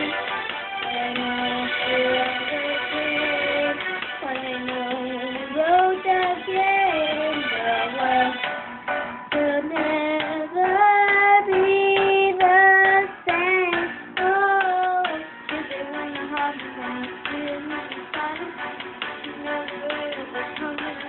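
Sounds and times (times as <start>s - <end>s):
young girl singing: 0.0s - 8.4s, 9.3s - 21.0s.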